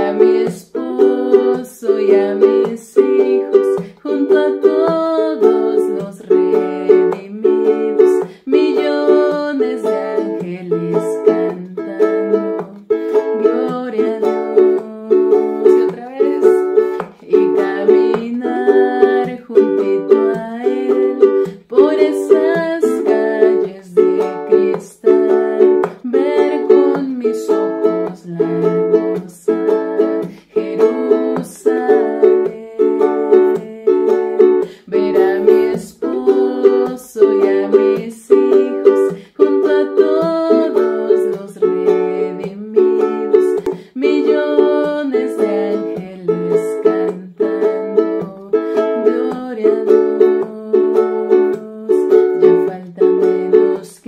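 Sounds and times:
ukulele strumming chords: 0:00.0 - 0:54.0.

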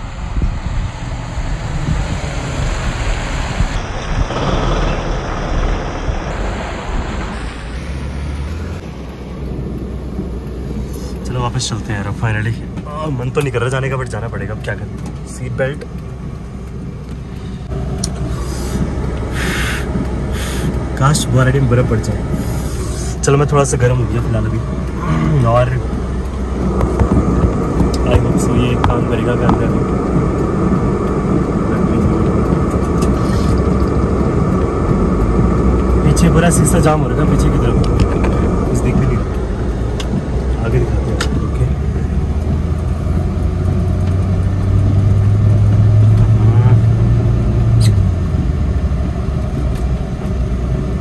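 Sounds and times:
car engine hum inside cabin: 0:00.0 - 0:51.0
light ticks: 0:09.0 - 0:46.3, 0:47.7 - 0:51.0.

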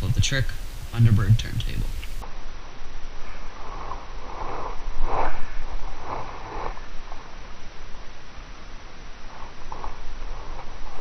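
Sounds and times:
person breathing through nose: 0:03.6 - 0:07.3.

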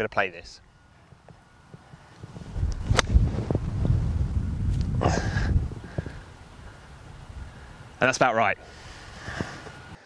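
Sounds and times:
wind rumble on microphone: 0:01.7 - 0:08.0, 0:08.8 - 0:09.9
golf club striking ball: 0:02.6 - 0:03.6.

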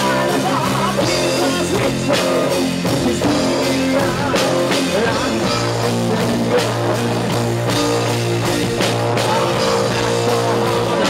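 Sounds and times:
bending electric guitar lead: 0:00.0 - 0:11.0
drum kit: 0:00.0 - 0:11.0
keyboards: 0:00.0 - 0:11.0
sustained bass notes: 0:00.0 - 0:11.0.

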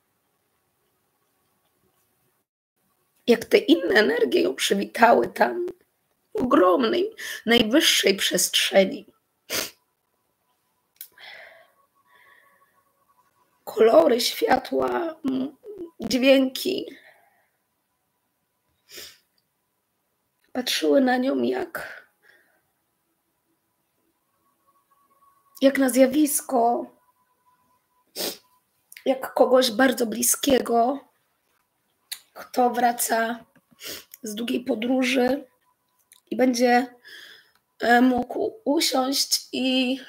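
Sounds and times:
woman sniffing: 0:09.5 - 0:09.8, 0:18.9 - 0:19.3, 0:28.2 - 0:28.5, 0:33.8 - 0:34.2
woman's sharp burst of breath: 0:18.8 - 0:19.3, 0:33.8 - 0:34.1, 0:37.0 - 0:37.5.

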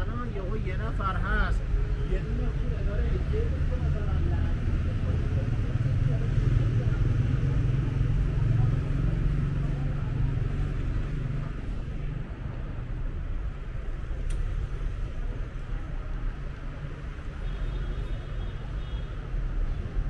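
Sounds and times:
traffic engine rumble: 0:00.0 - 0:20.0.

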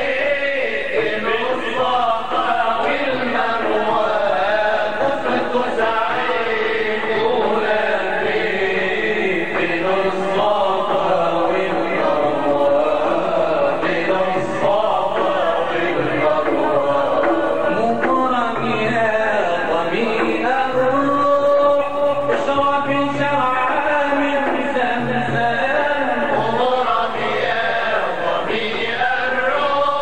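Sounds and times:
men chanting a religious song: 0:00.0 - 0:30.0.

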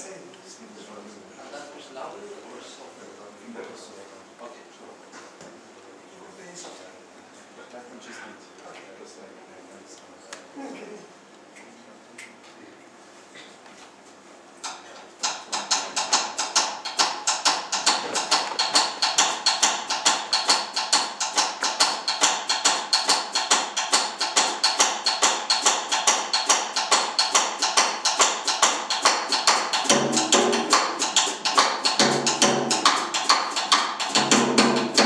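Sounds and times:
drummer playing clicking strokes: 0:14.6 - 0:35.0
low pitched notes: 0:29.9 - 0:33.2, 0:34.1 - 0:35.0.

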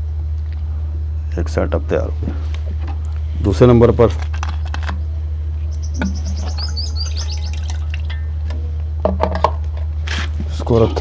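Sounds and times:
steady low hum: 0:00.0 - 0:11.0
birds chirping: 0:05.6 - 0:08.4.

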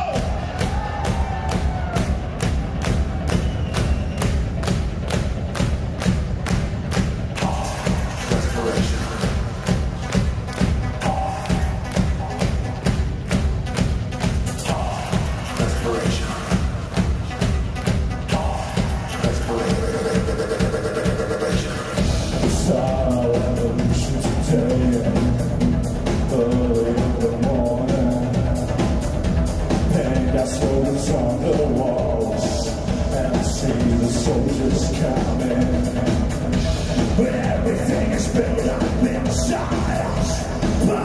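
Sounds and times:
electro-industrial band music: 0:00.0 - 0:41.0
kick-drum beat: 0:00.0 - 0:41.0.

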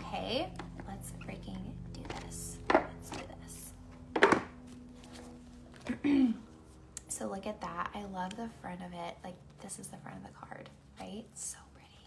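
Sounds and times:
faint steady hum: 0:00.0 - 0:12.0
card deck knocks: 0:04.1 - 0:04.6.

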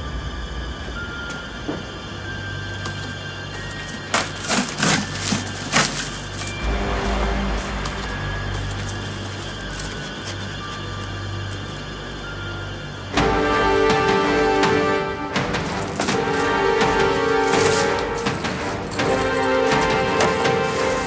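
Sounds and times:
background music with low drone: 0:00.0 - 0:21.0.

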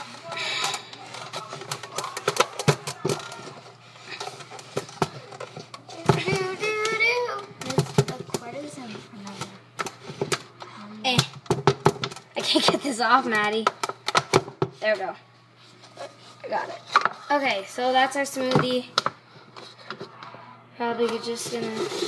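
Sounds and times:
child's voice: 0:05.9 - 0:09.6, 0:20.8 - 0:22.0.

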